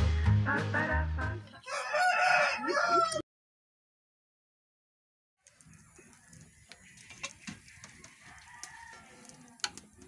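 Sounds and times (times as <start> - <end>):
rooster crowing faintly: 1.6 - 3.2, 7.7 - 9.8
wood fire crackling: 5.4 - 10.0.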